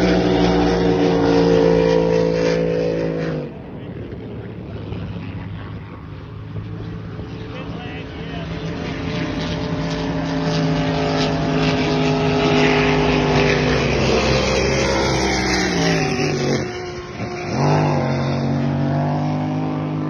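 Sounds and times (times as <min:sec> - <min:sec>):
powerboat engine revving: 0:00.0 - 0:20.0.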